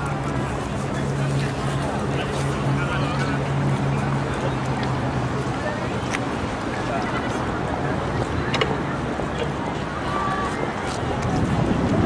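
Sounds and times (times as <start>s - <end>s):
murmur of voices: 0.0s - 12.0s
wind buffeting microphone: 0.0s - 12.0s.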